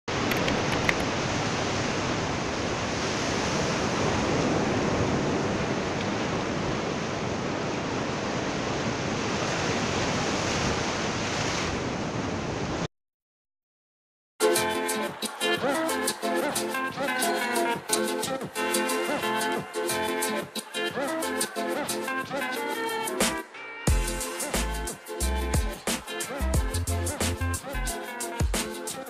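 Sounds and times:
surf washing onto beach: 0.1s - 12.9s.

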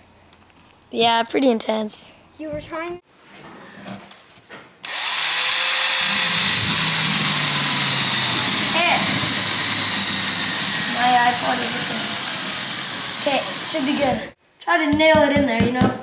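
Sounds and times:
power drill boring into glass: 4.8s - 14.4s.

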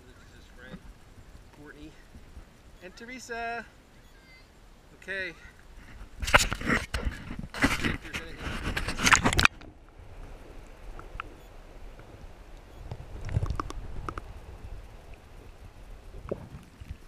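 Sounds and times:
water movement: 0.0s - 17.0s
camera handling noise: 6.2s - 9.6s
faint ticks: 9.1s - 17.0s.

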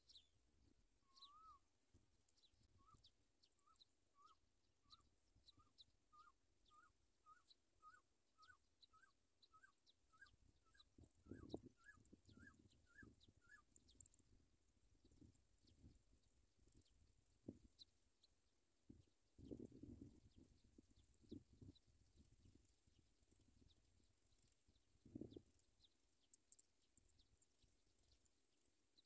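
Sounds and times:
bird chirping: 0.0s - 14.4s, 15.0s - 29.0s.

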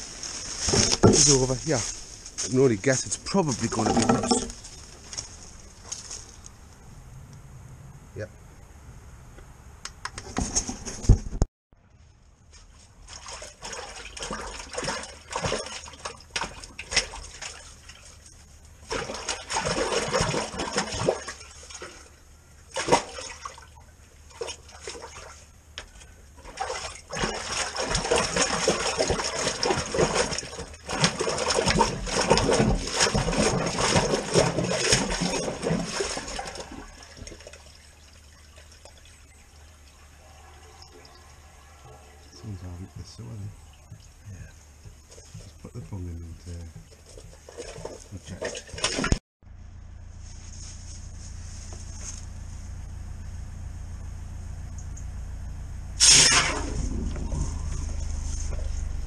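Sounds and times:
water rushing and splashing: 26.4s - 41.3s.

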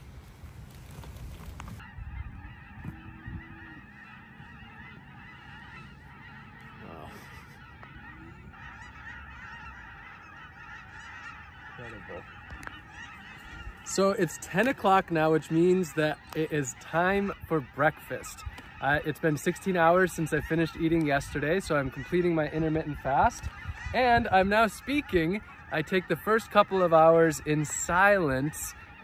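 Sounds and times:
geese honking: 0.0s - 29.0s.

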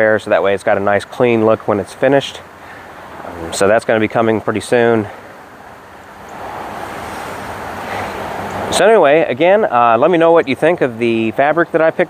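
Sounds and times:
steady outdoor rushing sound: 0.0s - 12.0s.

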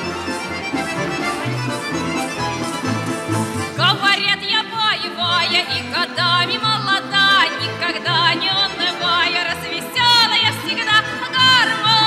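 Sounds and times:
instrumental accompaniment with bass: 0.0s - 12.0s.

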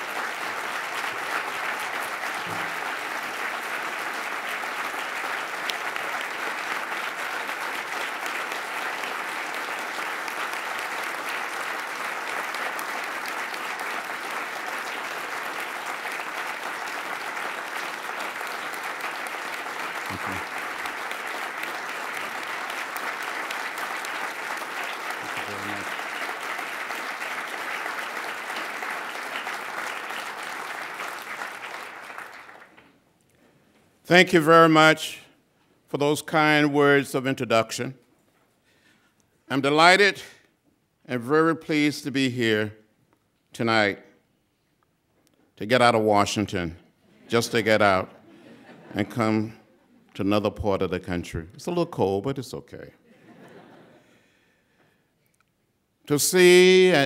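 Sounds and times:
audience applauding: 0.0s - 33.0s.

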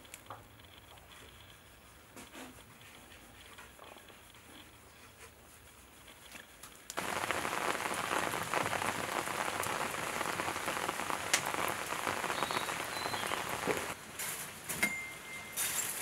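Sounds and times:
wood fire crackling: 0.0s - 14.8s.

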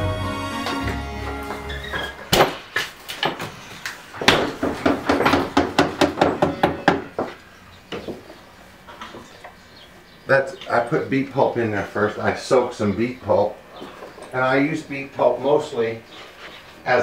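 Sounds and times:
hooves knocking on wood: 0.7s - 8.4s.

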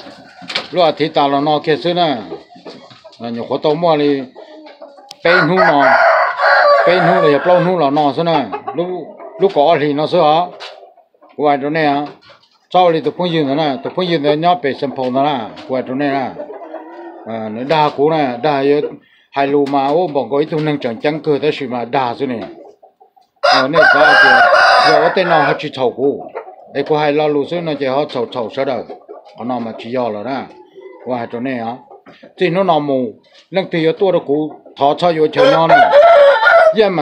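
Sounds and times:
rooster crowing: 5.2s - 7.9s, 23.4s - 25.7s, 35.4s - 36.8s.

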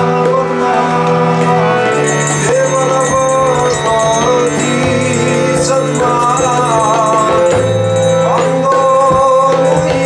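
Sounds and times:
harmonium chords: 0.0s - 10.0s
man singing: 0.0s - 10.0s.

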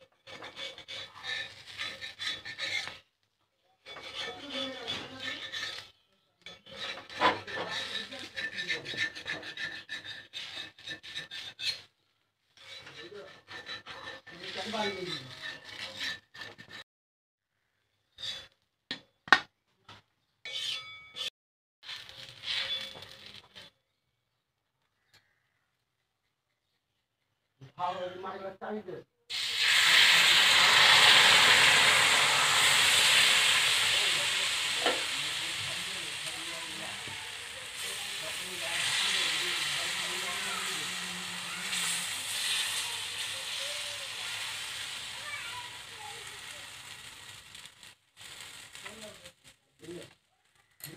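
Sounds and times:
metal spatula scraping griddle: 0.0s - 3.1s, 3.8s - 16.8s, 18.1s - 18.6s, 20.4s - 23.7s, 29.8s - 49.5s.

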